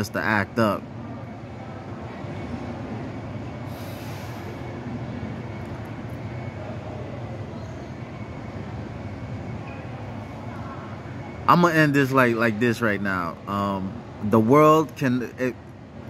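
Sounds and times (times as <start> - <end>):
brief louder hiss: 3.7 - 4.6.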